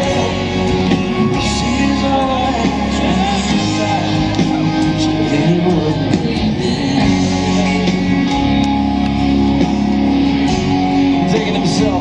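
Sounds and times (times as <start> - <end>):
bass guitar: 0.0 - 12.0
electric guitar chords: 0.0 - 12.0.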